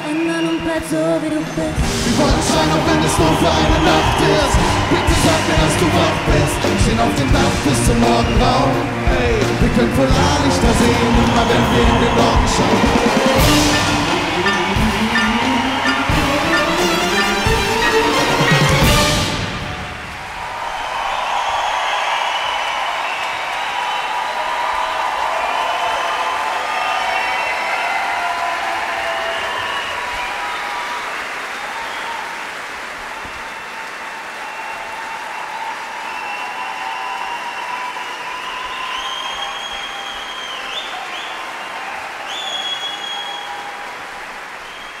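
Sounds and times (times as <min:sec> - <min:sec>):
whistles from audience: 0:00.0 - 0:09.5, 0:10.2 - 0:32.4, 0:33.3 - 0:45.0
audience applauding and cheering: 0:00.0 - 0:45.0.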